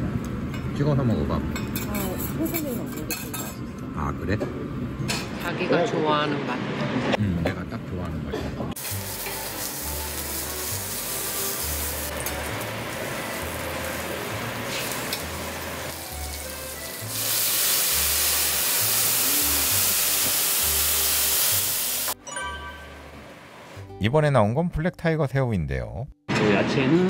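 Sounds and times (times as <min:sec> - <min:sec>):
blowtorch flame hissing: 0:08.8 - 0:22.2
shrimp sizzling on a griddle: 0:08.8 - 0:22.2.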